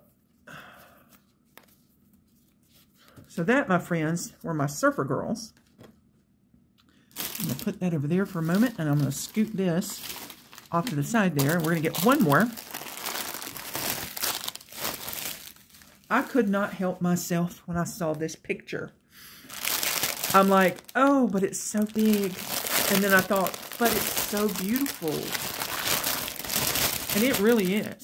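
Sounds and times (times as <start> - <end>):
plastic bag tearing: 7.1 - 16.1, 19.5 - 28.0
plastic mailer bag crinkling: 7.1 - 16.5, 19.5 - 28.0.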